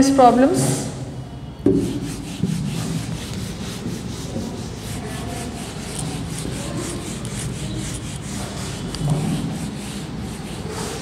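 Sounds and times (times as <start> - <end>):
duster rubbing on whiteboard: 1.7 - 11.0.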